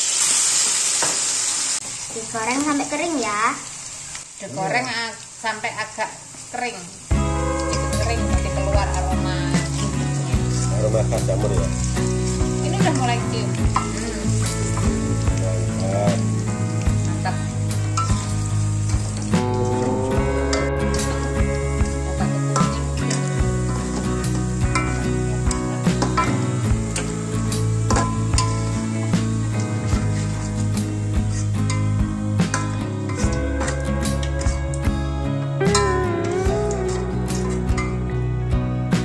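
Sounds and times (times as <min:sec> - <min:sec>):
mushrooms sizzling in hot oil: 0:00.0 - 0:39.0
background music: 0:07.1 - 0:39.0
spatula scraping and stirring: 0:07.6 - 0:16.3, 0:29.5 - 0:31.9.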